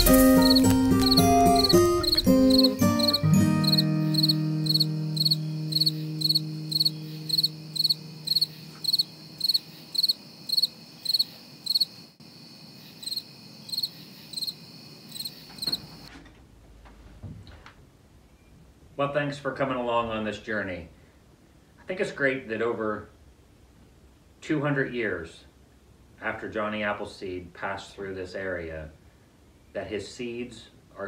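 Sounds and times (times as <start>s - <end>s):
background music chord: 0.0s - 9.4s
cricket chirping: 0.0s - 16.1s.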